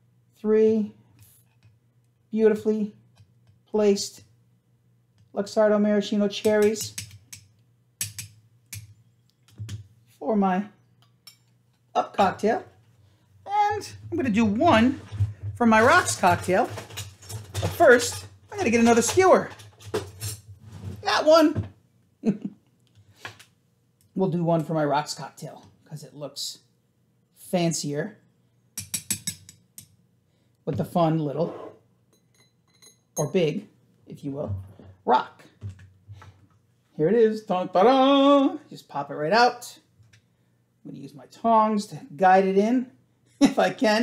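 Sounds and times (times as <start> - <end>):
tongs clicking on glassware: 6.4 - 8.9, 28.8 - 29.9.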